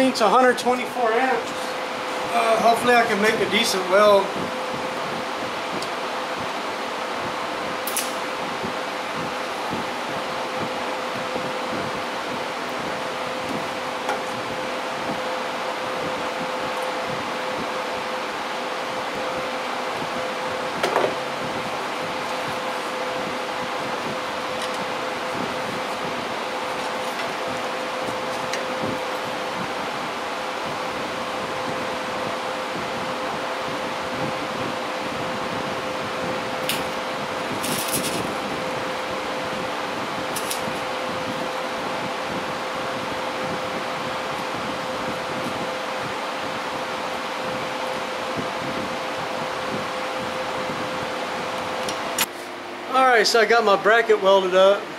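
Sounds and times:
electric fan whirring: 0.0s - 54.9s.

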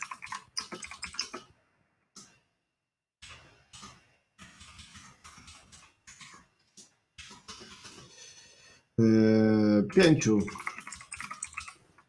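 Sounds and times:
computer keyboard typing: 0.0s - 1.4s, 9.9s - 12.0s.

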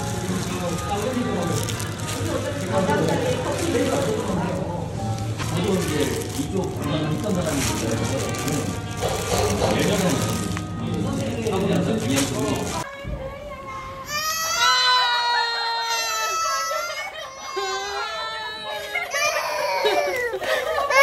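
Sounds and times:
music with voices: 0.0s - 14.0s
toddler crying: 13.8s - 21.0s.

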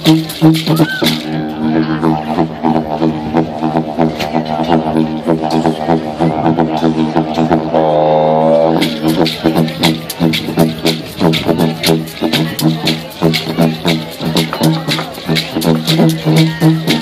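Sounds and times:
didgeridoo drone: 0.0s - 17.0s.

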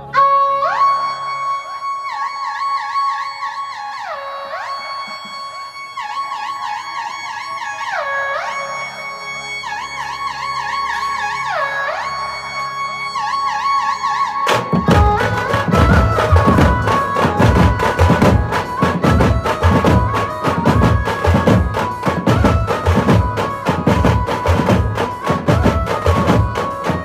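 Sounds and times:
loud band drums: 14.5s - 27.0s
electronic keyboard melody: 14.6s - 27.0s.

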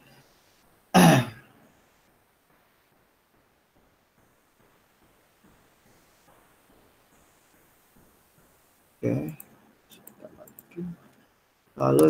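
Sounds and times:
man clearing his throat: 1.0s - 1.4s.

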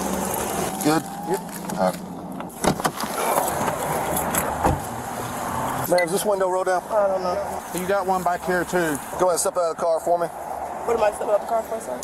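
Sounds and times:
roadside traffic noise: 0.0s - 12.0s.

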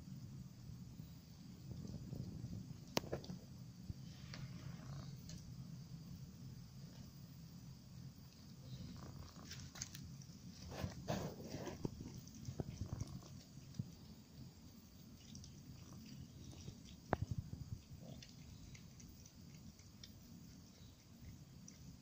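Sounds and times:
cat chewing crunching: 8.2s - 22.0s.

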